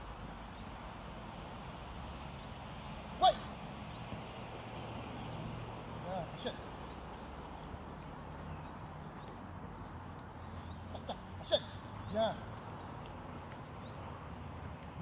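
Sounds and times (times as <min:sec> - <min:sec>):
football tapped on artificial turf: 0:03.9 - 0:04.4.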